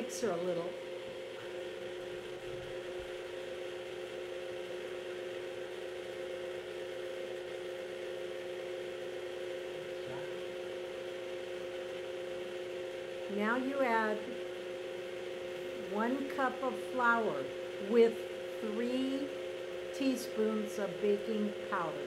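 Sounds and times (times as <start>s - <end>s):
stand mixer motor whining: 0.0s - 22.0s.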